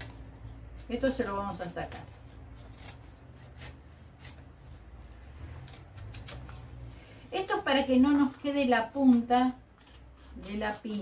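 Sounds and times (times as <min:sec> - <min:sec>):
scissors snipping paper: 0:00.7 - 0:04.7, 0:05.5 - 0:06.8, 0:08.2 - 0:11.0.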